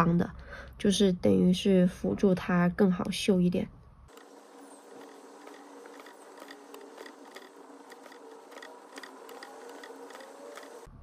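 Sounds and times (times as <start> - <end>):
needle ticking through fabric: 4.1 - 10.9.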